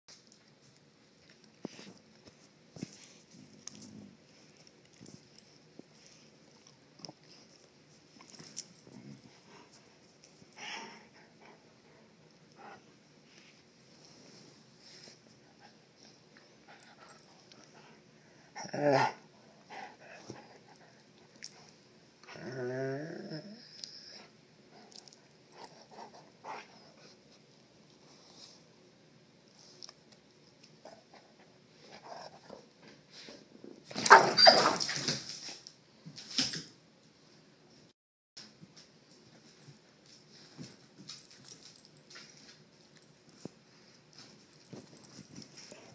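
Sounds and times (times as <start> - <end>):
faint shuffling: 0.6 - 6.5
dogs mouthing and scuffling: 39.4 - 45.9.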